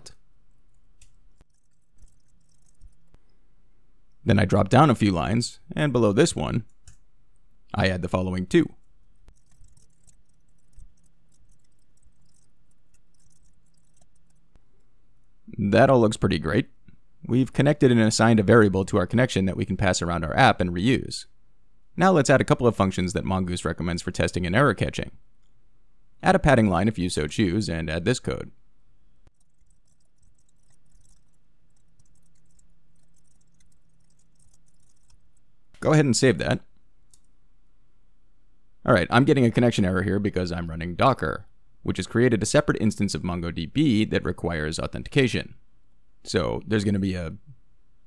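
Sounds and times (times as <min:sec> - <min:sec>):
low steady hum: 0:00.0 - 0:48.0
computer keyboard typing: 0:01.0 - 0:03.2, 0:09.3 - 0:14.6, 0:29.3 - 0:35.8.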